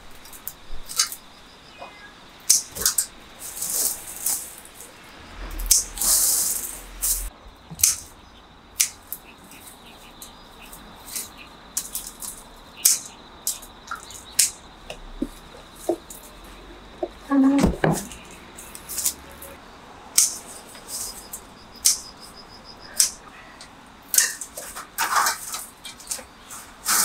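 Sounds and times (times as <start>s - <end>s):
rustling leaves and twigs: 0.0s - 27.0s
garden shears snipping: 7.2s - 8.1s.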